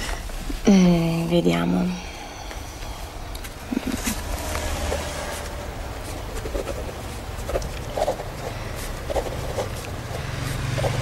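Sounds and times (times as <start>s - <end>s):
low steady hum: 0.0s - 11.0s
pen scratching on paper: 4.4s - 11.0s.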